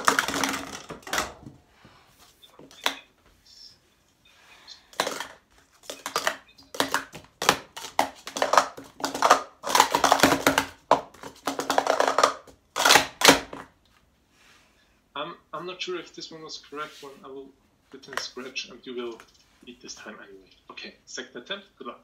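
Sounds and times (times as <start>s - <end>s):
plastic cups clattering: 0.0s - 1.6s, 4.9s - 13.7s.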